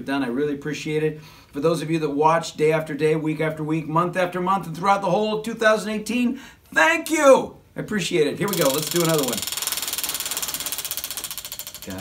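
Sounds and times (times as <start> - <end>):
prize wheel clicker clicking: 8.4 - 12.0.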